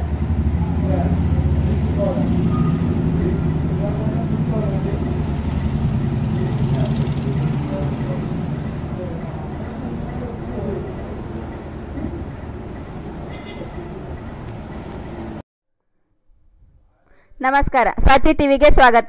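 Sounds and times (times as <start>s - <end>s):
vehicle engine rumbling: 0.0s - 15.4s.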